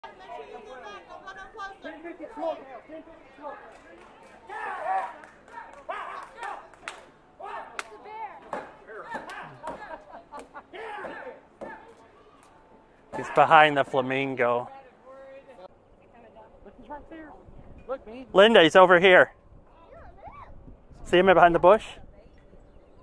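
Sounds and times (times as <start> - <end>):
background chatter of voices: 0.0 - 23.0.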